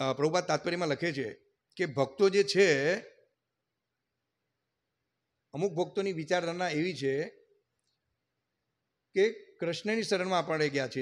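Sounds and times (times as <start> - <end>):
man speaking: 0.0 - 3.2, 5.5 - 7.4, 9.1 - 11.0.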